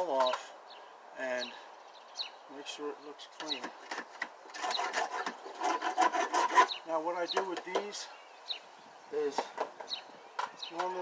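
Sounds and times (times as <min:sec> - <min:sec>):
hand scraper scraping wood: 0:03.6 - 0:07.9.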